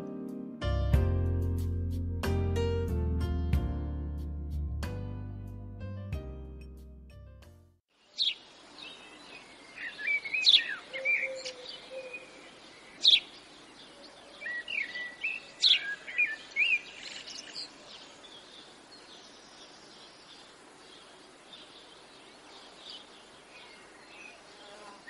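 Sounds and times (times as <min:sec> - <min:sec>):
faint steady outdoor hiss: 0:07.9 - 0:25.0
songbirds chirping and singing: 0:08.2 - 0:25.0.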